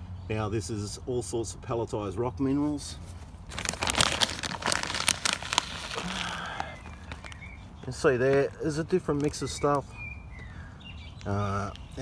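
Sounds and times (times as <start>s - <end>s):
plastic bag crinkling: 3.4s - 9.4s.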